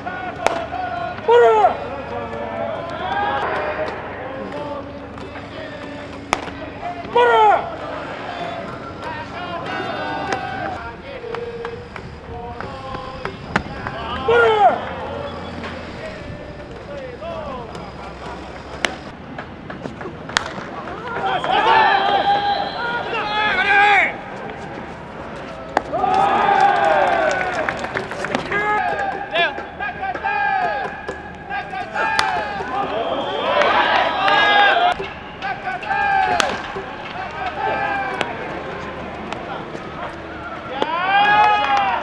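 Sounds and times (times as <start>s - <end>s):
players shouting high calls: 0.0s - 19.1s, 21.0s - 24.2s, 25.8s - 42.0s.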